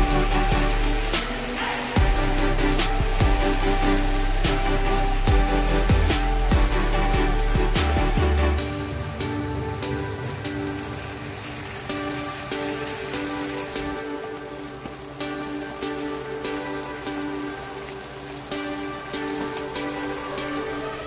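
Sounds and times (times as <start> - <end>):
background music: 0.0 - 21.0
sauce bubbling and sizzling: 0.0 - 21.0.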